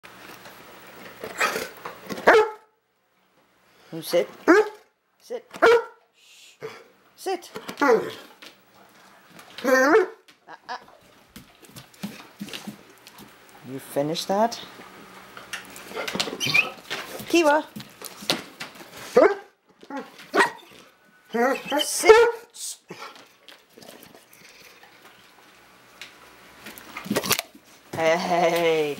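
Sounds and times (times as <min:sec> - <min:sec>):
dog barking: 0:02.2 - 0:02.7, 0:04.5 - 0:04.8, 0:05.6 - 0:06.0, 0:09.7 - 0:10.2, 0:19.2 - 0:20.7, 0:22.1 - 0:22.5
dog making wavering vocal sounds: 0:21.3 - 0:22.2.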